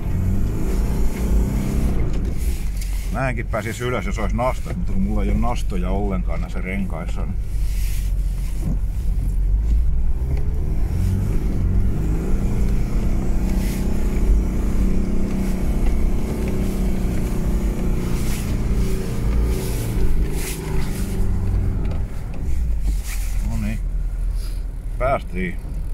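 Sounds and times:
diesel engine revving under load: 0.0s - 4.8s, 7.4s - 25.9s.

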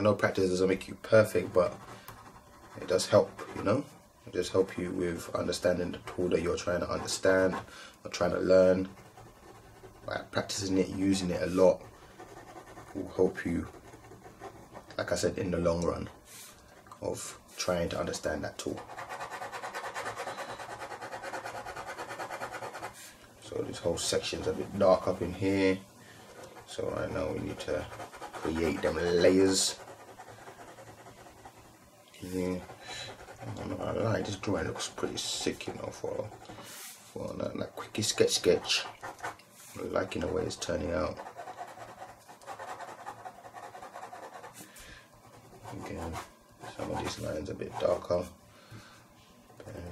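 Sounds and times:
pen scratching on paper: 1.3s - 3.7s, 5.9s - 15.0s, 18.6s - 23.0s, 26.2s - 36.8s, 38.2s - 39.4s, 40.0s - 44.6s, 45.2s - 48.1s.

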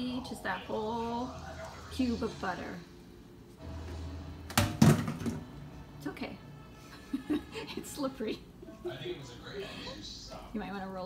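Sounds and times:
knocks on hard kitchen surface: 4.5s - 5.4s.

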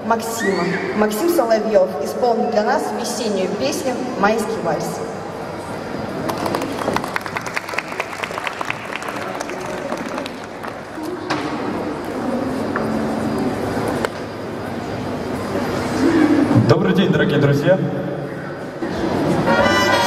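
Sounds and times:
audience applauding: 6.2s - 11.0s
instrumental waltz music: 19.5s - 20.0s.

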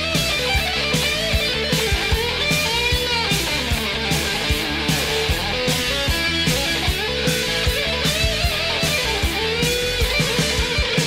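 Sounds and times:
bass guitar: 0.0s - 11.0s
electric guitar lead line: 0.0s - 11.0s
steady drums: 0.0s - 11.0s.

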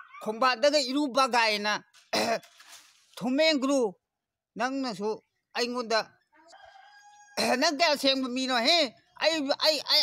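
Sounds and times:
distant rooster crowing: 6.5s - 7.8s.

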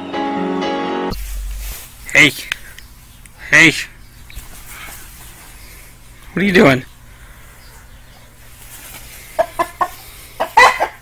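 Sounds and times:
rooster clucking: 9.2s - 11.0s.

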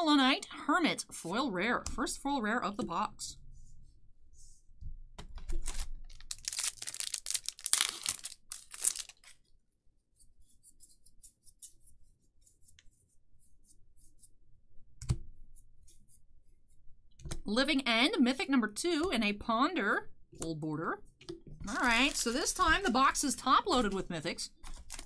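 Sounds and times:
cards and wrapping rustling: 5.4s - 9.5s, 21.6s - 25.0s.

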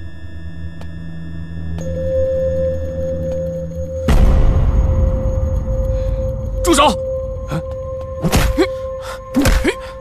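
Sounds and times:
low sustained drone: 0.0s - 10.0s.

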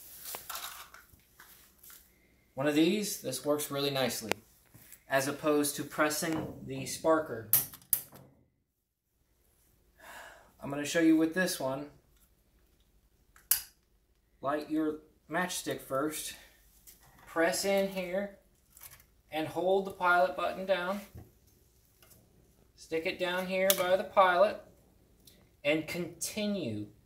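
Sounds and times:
handling noise with soft rustling: 0.0s - 2.4s, 3.5s - 6.7s, 16.5s - 25.5s.

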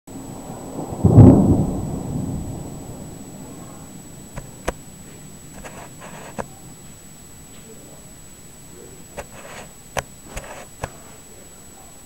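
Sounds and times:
thunder rumble: 0.1s - 10.9s.

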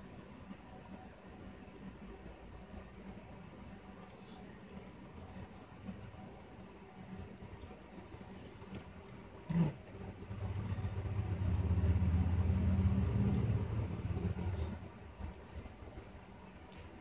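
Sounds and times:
low motor hum: 9.5s - 16.2s.

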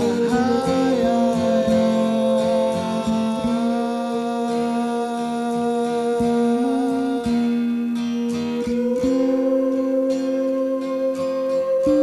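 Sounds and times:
man singing long held notes: 0.0s - 12.0s
plucked guitars: 0.0s - 12.0s
sustained guitar line: 0.0s - 12.0s.

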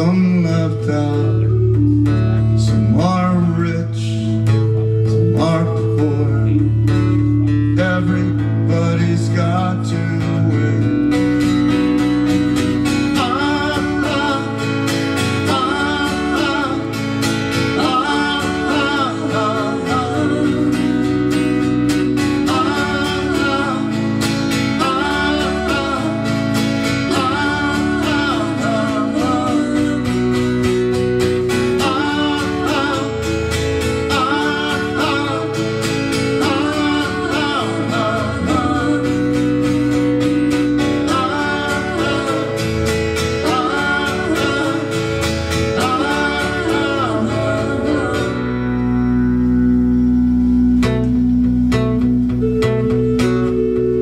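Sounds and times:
man singing: 0.0s - 1.6s, 2.5s - 6.9s, 7.6s - 11.2s, 12.9s - 30.8s, 31.5s - 40.1s, 40.8s - 48.8s
strummed acoustic guitar: 0.0s - 54.0s
sustained keyboard chords: 0.0s - 54.0s.

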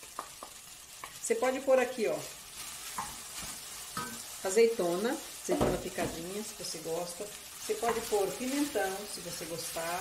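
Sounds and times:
food sizzling in a pot: 0.0s - 10.0s.

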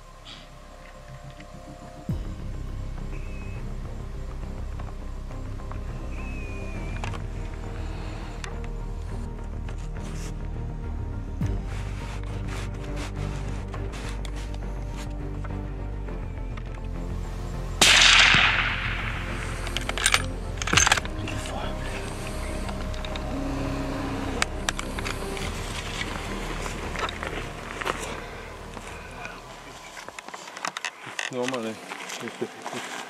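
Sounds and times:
background music: 0.0s - 33.0s
rifle shot: 17.8s - 21.1s
sharp clicks: 17.8s - 31.7s.

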